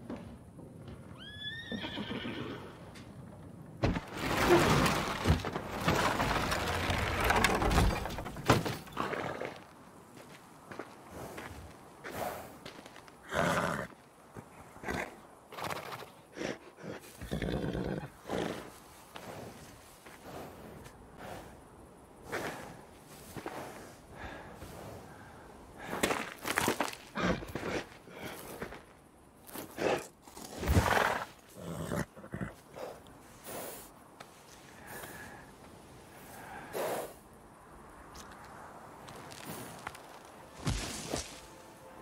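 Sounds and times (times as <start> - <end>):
horse whinnying: 1.2 - 2.8.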